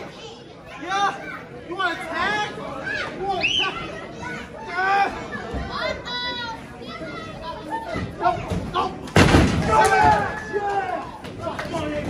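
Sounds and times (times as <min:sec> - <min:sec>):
voices shouting: 0:08.2 - 0:12.0.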